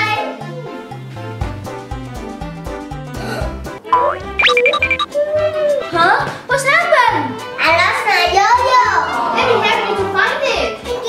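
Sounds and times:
light children's background music: 0.0s - 11.0s
short high beeps: 3.9s - 5.1s
cartoon rising whistle glide: 4.0s - 5.1s.

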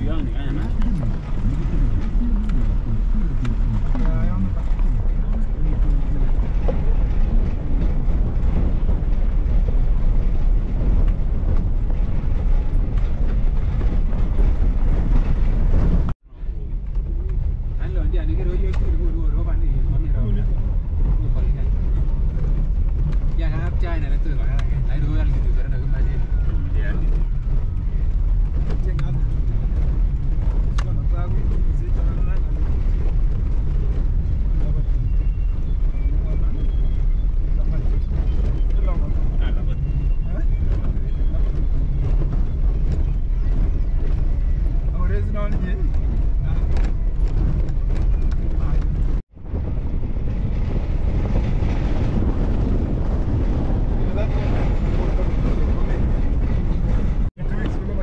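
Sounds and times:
car engine and tyres rumbling: 0.0s - 58.0s.

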